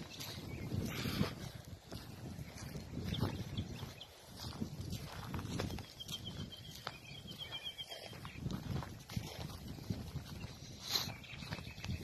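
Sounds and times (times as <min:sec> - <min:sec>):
footsteps crunching on dry debris: 0:00.0 - 0:12.0.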